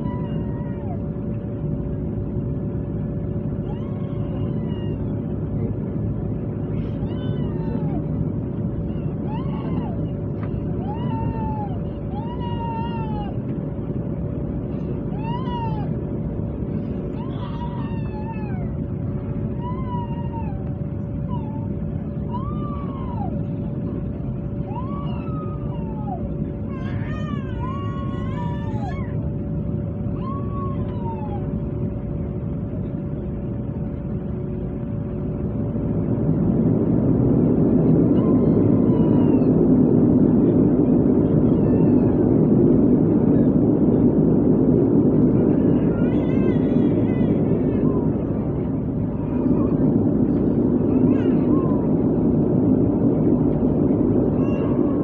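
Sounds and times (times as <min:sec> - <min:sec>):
wailing cries: 0:00.0 - 0:01.0, 0:03.6 - 0:05.2, 0:06.8 - 0:08.1, 0:08.8 - 0:13.4, 0:15.1 - 0:16.0, 0:17.1 - 0:18.8, 0:19.5 - 0:23.5, 0:24.6 - 0:29.3, 0:30.1 - 0:31.6, 0:37.9 - 0:39.7, 0:45.4 - 0:49.8
turboprop engine drone: 0:00.0 - 0:55.0.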